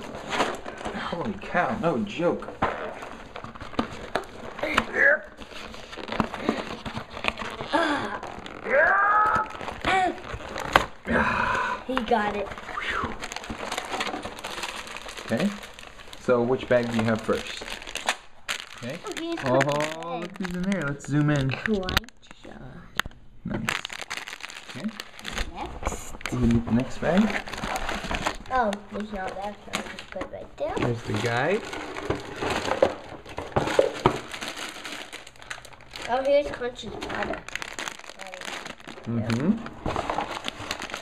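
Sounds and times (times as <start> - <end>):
plastic bags and paper crinkling: 0.0 - 22.6, 23.6 - 41.0.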